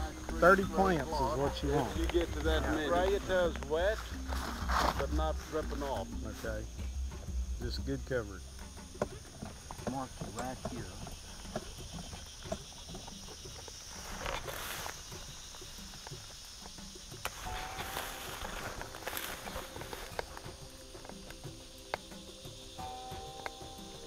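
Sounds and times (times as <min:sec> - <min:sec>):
footsteps through brush and leaves: 0:00.0 - 0:07.6, 0:08.4 - 0:23.7
insects buzzing: 0:00.0 - 0:24.0.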